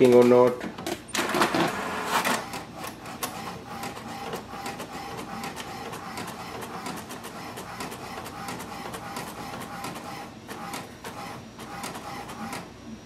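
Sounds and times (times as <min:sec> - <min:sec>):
printer clicking: 0:00.0 - 0:12.7
printer mechanical clatter: 0:00.0 - 0:12.7.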